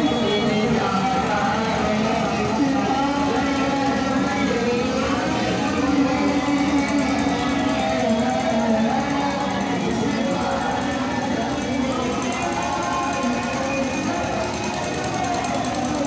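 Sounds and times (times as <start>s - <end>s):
devotional song over loudspeakers: 0.0s - 16.0s
street and crowd noise: 0.0s - 16.0s.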